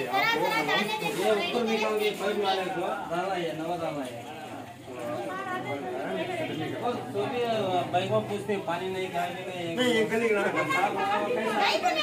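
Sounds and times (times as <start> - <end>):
group of people talking: 0.0 - 12.0.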